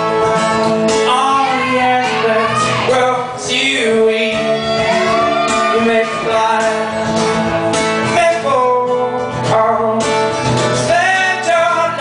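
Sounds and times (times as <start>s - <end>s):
acoustic guitar strummed: 0.0s - 12.0s
man singing long notes: 0.0s - 12.0s.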